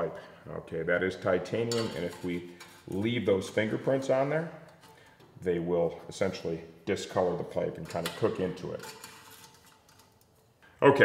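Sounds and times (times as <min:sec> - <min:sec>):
man speaking: 0:00.0 - 0:04.7, 0:05.4 - 0:08.9, 0:10.8 - 0:11.0.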